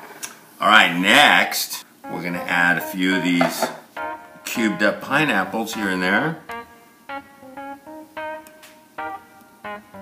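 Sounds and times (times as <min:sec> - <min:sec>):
plucked guitar notes: 0:02.0 - 0:10.0.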